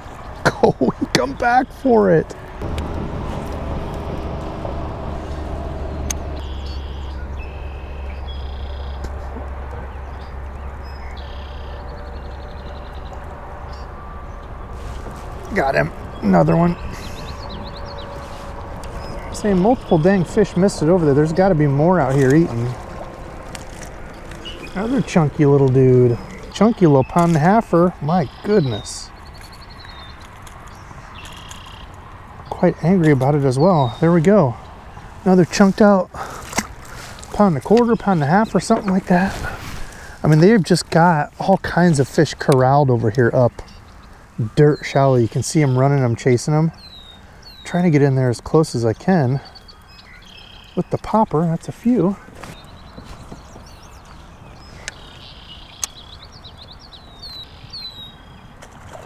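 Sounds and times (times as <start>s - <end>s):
birds chirping: 0.0s - 59.0s
steady low rumble: 2.3s - 7.5s, 11.8s - 28.1s
sharp clicks: 6.0s - 6.4s.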